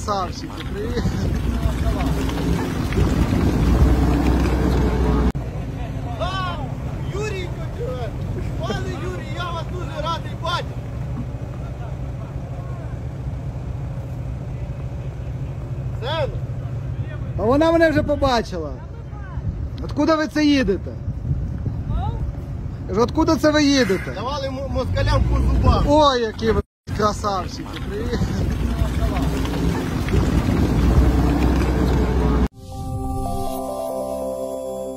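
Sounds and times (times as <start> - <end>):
vehicle engine low rumble: 0.0 - 19.9, 20.5 - 23.6, 24.3 - 32.5
voices: 0.0 - 21.1, 21.8 - 32.5
wind on microphone: 0.8 - 5.3, 19.3 - 20.0, 20.7 - 22.9, 28.1 - 32.5
electronic music chime: 32.6 - 34.9.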